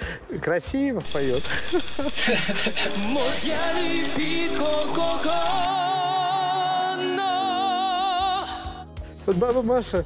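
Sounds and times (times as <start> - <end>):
music: 0.0 - 10.0
person singing with vibrato: 2.8 - 8.9.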